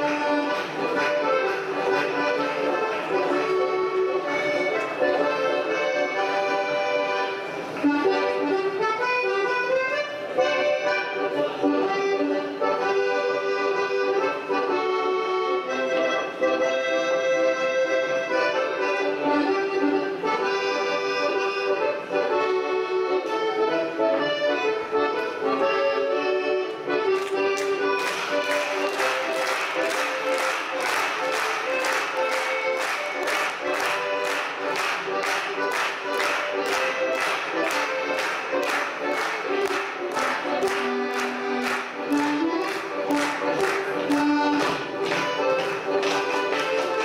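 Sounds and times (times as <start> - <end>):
accordion folk dance music: 0.0 - 47.0.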